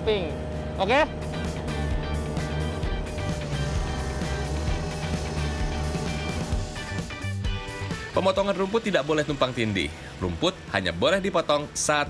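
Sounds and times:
mower engine running: 0:00.0 - 0:10.8
background music with steady beat: 0:00.0 - 0:12.0.

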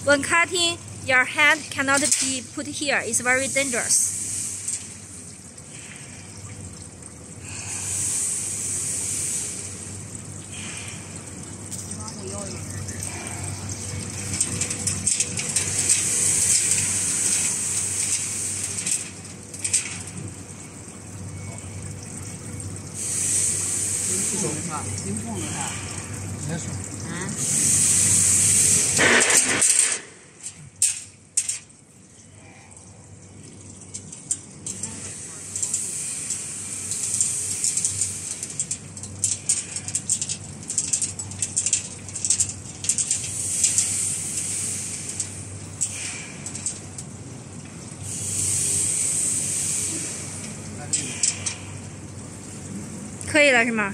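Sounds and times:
hissing surges: 0:03.2 - 0:04.6.

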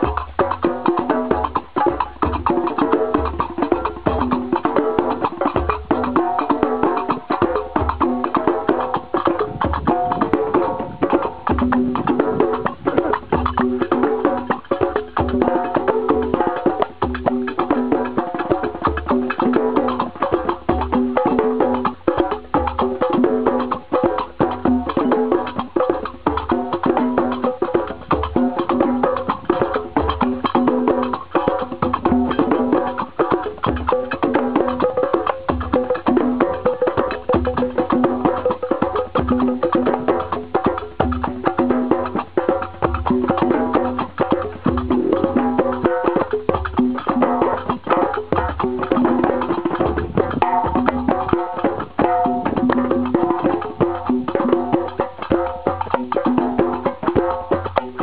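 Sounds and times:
hand drums playing fast rhythm: 0:00.0 - 0:58.0.

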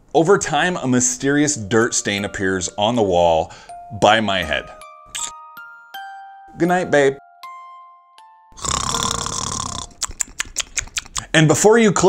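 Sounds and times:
person snoring: 0:08.6 - 0:10.0.

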